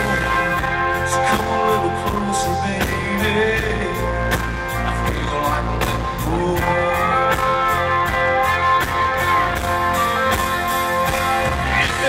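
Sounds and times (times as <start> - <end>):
electric guitar lead lines: 0.0 - 12.0.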